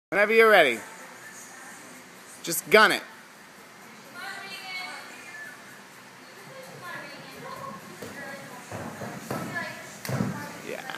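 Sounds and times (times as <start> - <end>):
feet thudding on gym floor: 8.0 - 10.5.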